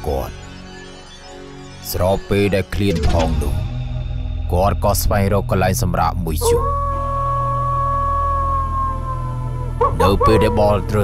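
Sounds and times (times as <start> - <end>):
speech: 0.0 - 0.3, 1.9 - 3.6, 4.5 - 6.7, 9.9 - 11.0
low droning background music: 0.0 - 11.0
dog howling: 6.4 - 11.0.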